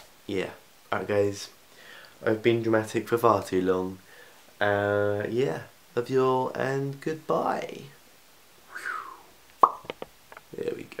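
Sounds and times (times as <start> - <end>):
short vocal sounds: 8.7 - 9.8
mouth pop with falling tone: 9.6 - 10.0.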